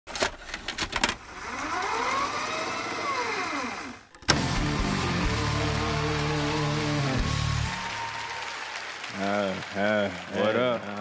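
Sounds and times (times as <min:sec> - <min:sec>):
music with held chords: 0:04.3 - 0:07.8.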